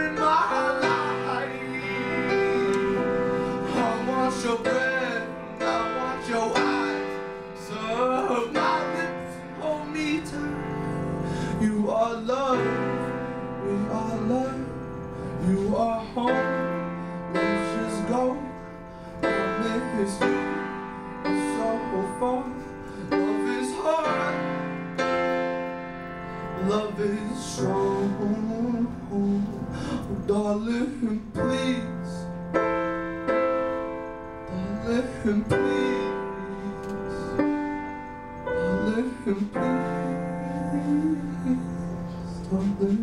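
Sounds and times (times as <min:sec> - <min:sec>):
man singing: 0:00.0 - 0:24.8, 0:26.5 - 0:32.3, 0:34.5 - 0:37.4, 0:38.5 - 0:43.0
piano sustained chords: 0:00.0 - 0:43.0.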